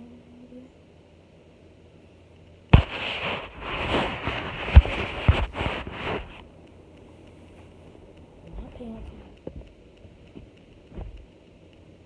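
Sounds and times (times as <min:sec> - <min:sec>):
sharp knocks on microphone: 0:10.4 - 0:11.2.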